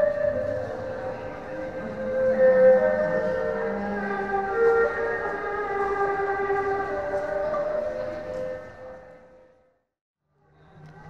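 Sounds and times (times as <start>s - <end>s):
bowed string instrument: 0.0s - 9.3s.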